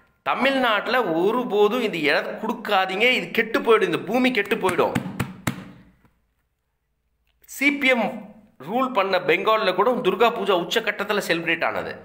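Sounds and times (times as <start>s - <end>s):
man speaking: 0.3s - 5.2s, 7.4s - 12.0s.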